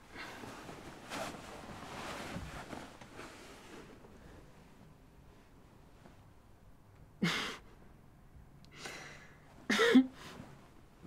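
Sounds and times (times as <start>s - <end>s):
bedcovers rustling: 0.0s - 6.5s, 9.5s - 11.0s.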